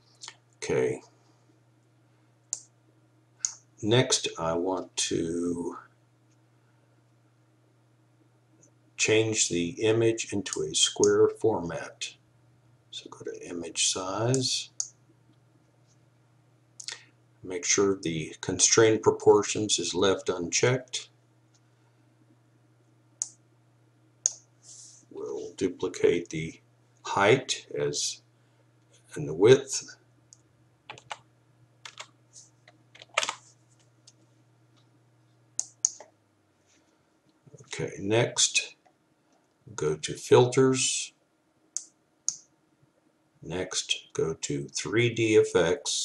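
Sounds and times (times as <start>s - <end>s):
low steady hum: 0.0s - 46.0s
person speaking: 0.6s - 1.1s, 3.8s - 5.8s, 9.0s - 12.2s, 12.9s - 14.8s, 16.8s - 21.2s, 24.7s - 28.2s, 29.1s - 30.0s, 37.6s - 38.8s
sharp clicks: 35.6s - 36.2s.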